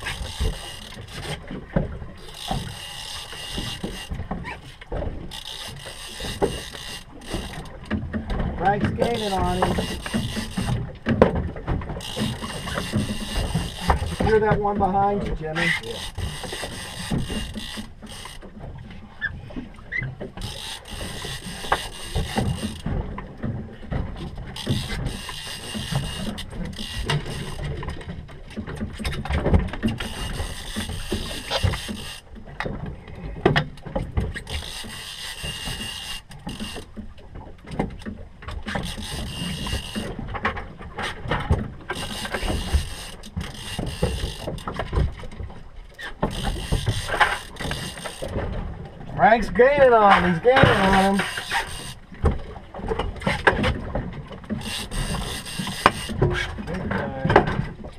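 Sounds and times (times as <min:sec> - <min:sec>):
wind: 0:00.0 - 0:57.9
water rushing: 0:08.5 - 0:10.8, 0:46.5 - 0:52.9.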